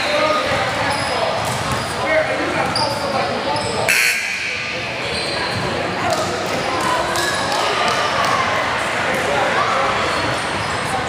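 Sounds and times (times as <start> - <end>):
indistinct talk echoing in hall: 0.0 - 11.0.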